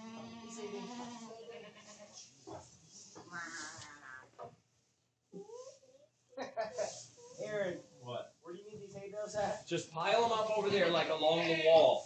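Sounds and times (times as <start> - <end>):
goats bleating: 11.2 - 11.9.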